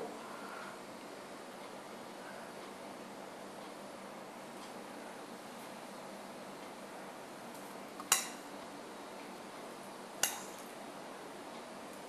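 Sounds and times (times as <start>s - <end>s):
metal fork clinking on plate: 8.1s - 8.4s, 10.2s - 10.6s.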